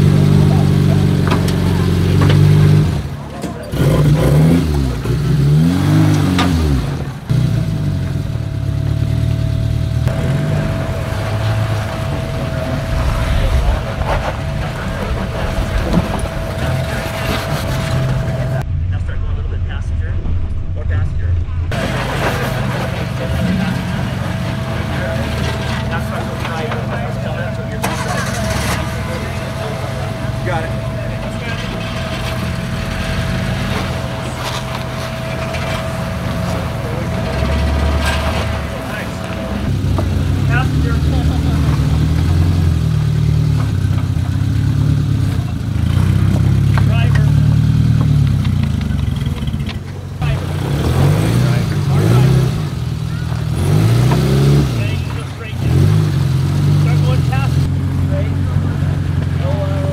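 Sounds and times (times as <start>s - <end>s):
off-road engines at low speed: 0.0s - 59.9s.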